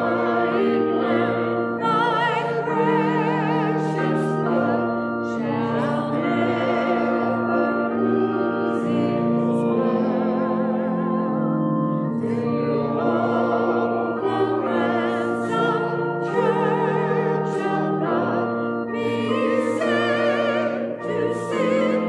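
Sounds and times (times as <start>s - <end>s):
electronic keyboard chords: 0.0s - 22.0s
woman singing a hymn: 0.0s - 22.0s.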